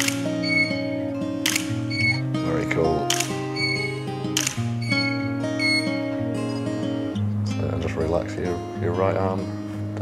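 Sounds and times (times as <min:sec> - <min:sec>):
camera shutter firing: 0:00.0 - 0:00.3, 0:01.4 - 0:02.2, 0:03.1 - 0:05.2
background music with sustained notes: 0:00.0 - 0:10.0.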